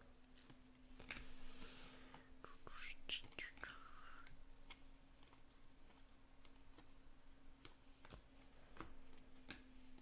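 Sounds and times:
cards clicking and sliding: 0.3 - 2.3, 2.9 - 10.0.

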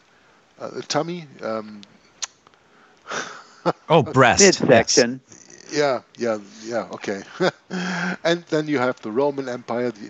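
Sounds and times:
person saying oh: 3.9 - 5.0.

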